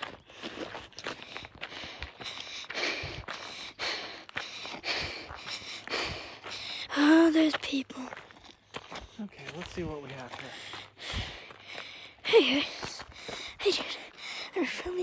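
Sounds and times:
footsteps on dirt trail: 0:00.0 - 0:15.0
person calling out: 0:06.9 - 0:08.1.

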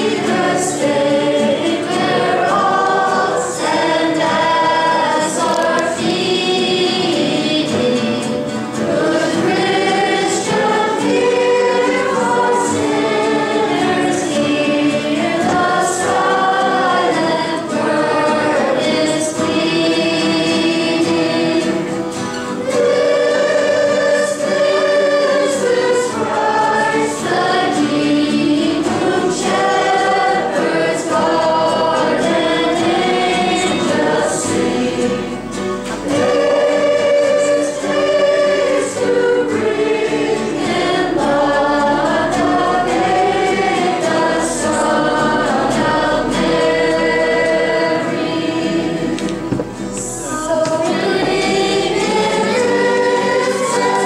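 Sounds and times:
girls singing a carol: 0:00.0 - 0:54.0.

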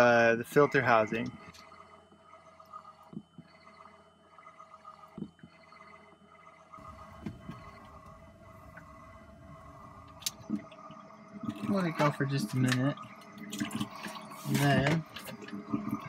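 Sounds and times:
electric pump humming: 0:00.0 - 0:16.0
soft knocks: 0:07.1 - 0:08.2.

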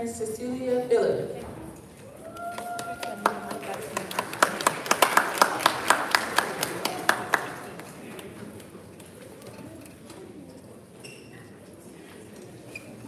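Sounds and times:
crowd murmur: 0:01.2 - 0:13.0
audience applause: 0:02.2 - 0:08.3.

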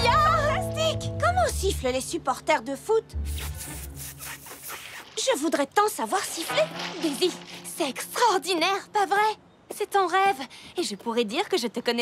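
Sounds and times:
soft background music: 0:00.0 - 0:11.6.

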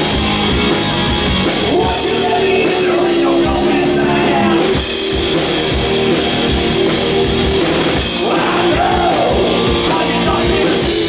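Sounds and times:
bass guitar: 0:00.0 - 0:11.0
drum kit beating: 0:00.0 - 0:11.0
electric guitar: 0:00.0 - 0:11.0.

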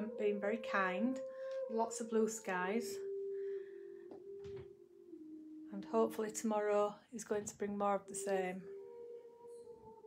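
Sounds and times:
slow sustained background music: 0:00.0 - 0:10.0.

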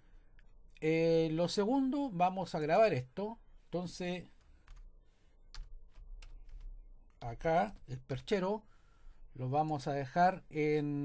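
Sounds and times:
faint keyboard keystrokes: 0:04.3 - 0:04.9, 0:05.5 - 0:07.9.

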